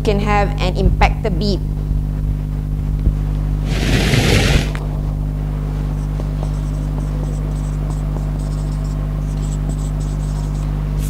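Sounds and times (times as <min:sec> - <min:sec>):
low electrical hum: 0:00.0 - 0:11.0
marker squeaking on whiteboard: 0:06.4 - 0:10.7.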